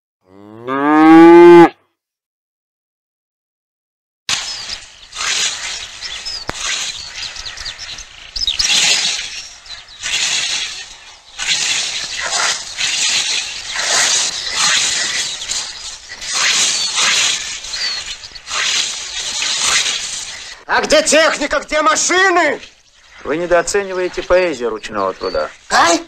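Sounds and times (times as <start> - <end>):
hissing noise: 4.3 - 26.0
small birds chirping: 4.3 - 26.0.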